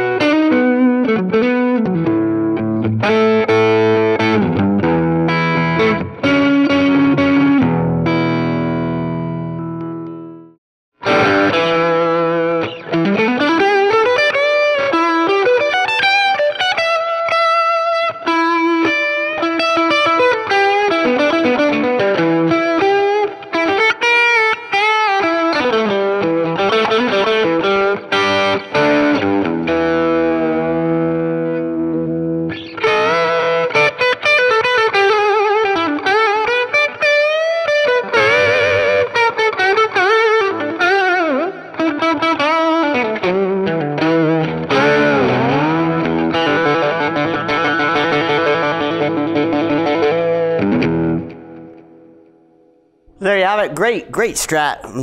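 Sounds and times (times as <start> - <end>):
distorted electric guitar lead: 0.0 - 10.3, 11.0 - 52.0.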